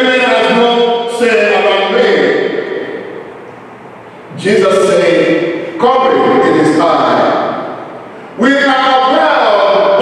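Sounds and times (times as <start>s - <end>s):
man speaking with echo: 0.0s - 3.4s, 4.3s - 10.0s.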